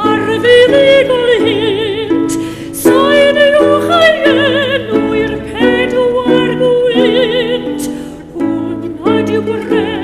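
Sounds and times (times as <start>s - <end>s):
woman singing with vibrato: 0.0s - 10.0s.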